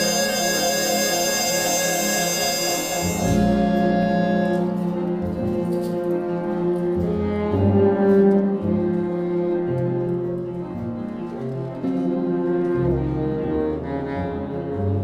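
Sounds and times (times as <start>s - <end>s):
jazz big band held chord: 0.0s - 10.7s.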